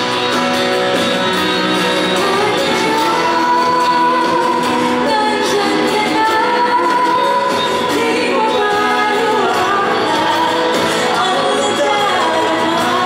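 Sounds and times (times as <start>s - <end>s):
strummed acoustic guitar: 0.0s - 13.0s
woman singing pop ballad: 2.0s - 13.0s.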